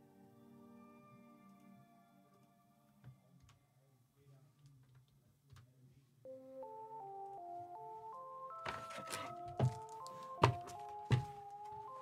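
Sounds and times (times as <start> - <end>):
chime-like background music: 6.3 - 12.0.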